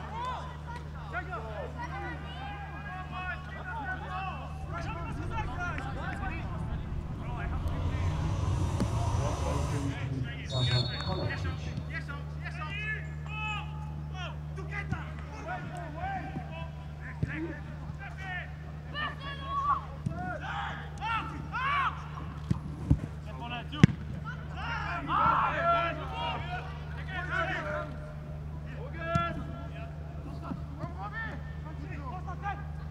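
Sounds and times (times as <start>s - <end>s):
steady low hum: 2.5s - 12.2s.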